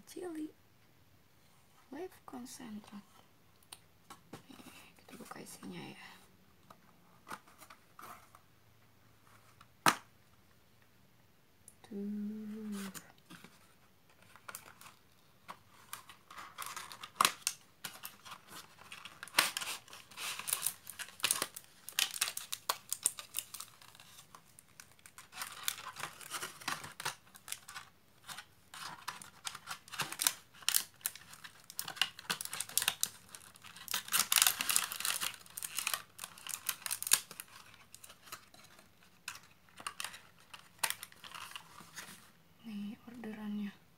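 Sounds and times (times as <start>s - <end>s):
cardboard and paper rustling: 7.2s - 8.4s, 12.5s - 42.4s.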